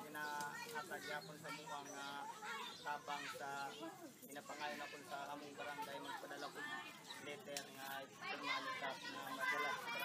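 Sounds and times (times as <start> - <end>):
man talking: 0.0 - 6.6.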